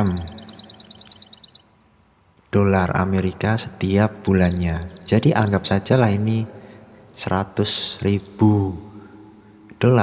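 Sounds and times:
high-pitched chirping trill: 0.0s - 1.8s, 4.3s - 6.1s.

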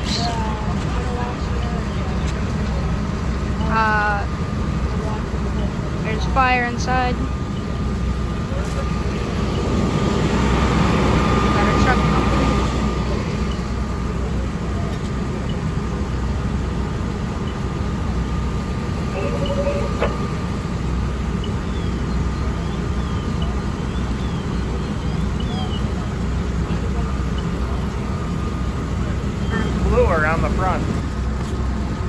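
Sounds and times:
fire engine diesel and pump rumble: 0.0s - 32.0s
firefighters talking: 0.0s - 32.0s
faint steady tone: 5.1s - 30.8s.

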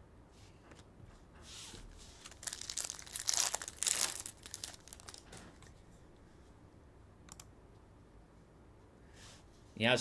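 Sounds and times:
foil wrapper tearing and crinkling: 2.2s - 5.3s.

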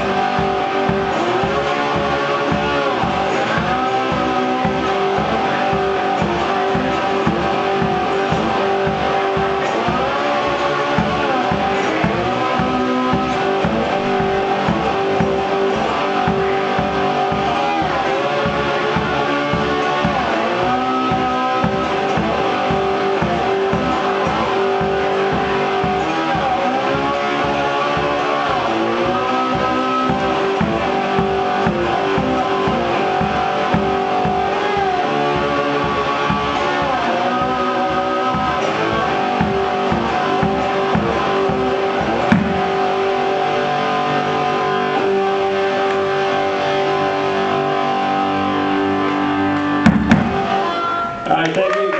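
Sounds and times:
slide guitar playing blues: 0.0s - 51.2s.

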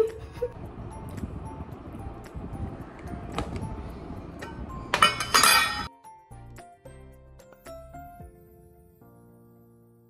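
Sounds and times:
soft background music: 0.0s - 10.0s
metal lid clinking: 4.9s - 5.9s.

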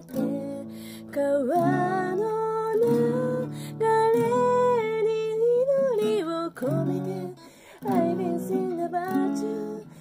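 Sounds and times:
soft acoustic guitar: 0.0s - 10.0s.

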